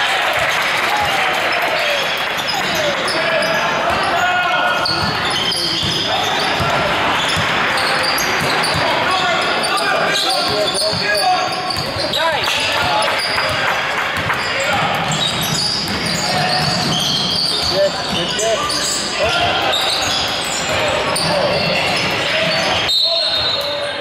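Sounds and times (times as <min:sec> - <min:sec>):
voices calling out in a hall: 0:00.0 - 0:24.0.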